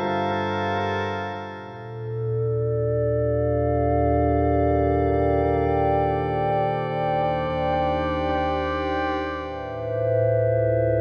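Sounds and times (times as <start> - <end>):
synthesizer chord: 0.0 - 11.0.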